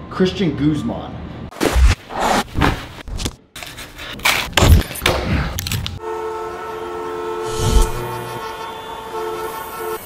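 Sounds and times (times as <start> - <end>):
held horn chord: 6.0 - 10.0.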